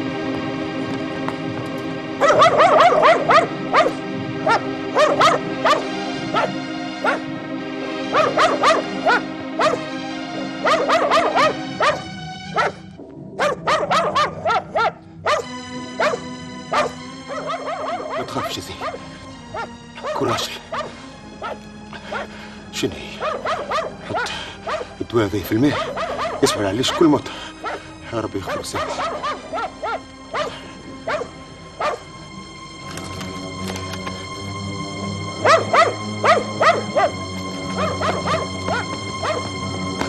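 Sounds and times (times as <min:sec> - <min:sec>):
background music of held tones: 0:00.0 - 0:40.0
dog barking: 0:02.2 - 0:07.3, 0:08.1 - 0:09.9, 0:10.6 - 0:12.8, 0:13.4 - 0:22.3, 0:23.2 - 0:24.9, 0:25.7 - 0:27.0, 0:27.6 - 0:27.8, 0:28.4 - 0:32.1, 0:35.4 - 0:39.6.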